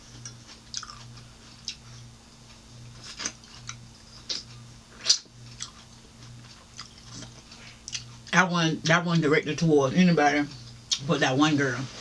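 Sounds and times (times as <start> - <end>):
faint low hum: 0.0 - 12.0
chewing grape mouth clicks: 0.2 - 1.8.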